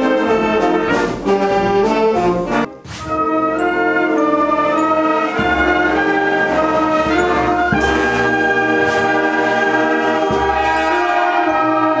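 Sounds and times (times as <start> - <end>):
wind band playing: 0.0 - 12.0.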